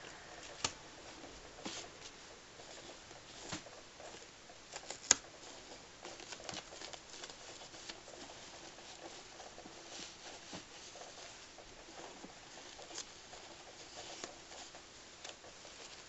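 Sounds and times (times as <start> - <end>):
fabric rustling: 0.0 - 16.0.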